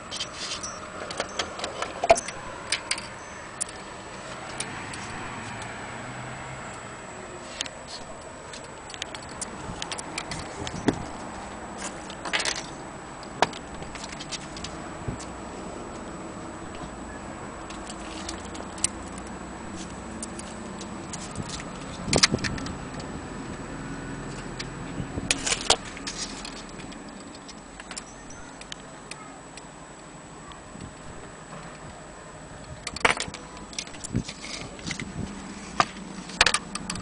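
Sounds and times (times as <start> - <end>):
handling clicks and clatter: 0.0 - 5.7, 7.6 - 16.0, 17.7 - 23.6, 24.2 - 29.2, 32.6 - 37.0.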